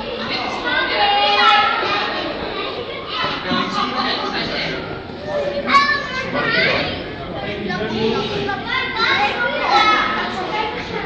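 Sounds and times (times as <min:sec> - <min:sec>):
background chatter: 0:00.0 - 0:11.0
children talking and calling out: 0:00.0 - 0:11.0.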